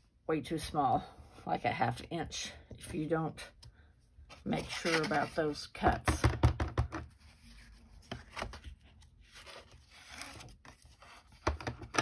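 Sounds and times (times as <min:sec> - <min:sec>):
card sheets rustling and sliding: 0:04.2 - 0:05.6, 0:07.1 - 0:11.9.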